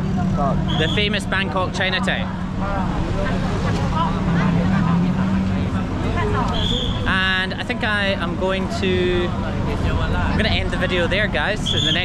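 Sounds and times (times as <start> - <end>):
crowd talking: 0.0 - 12.0
traffic engines running: 0.0 - 12.0.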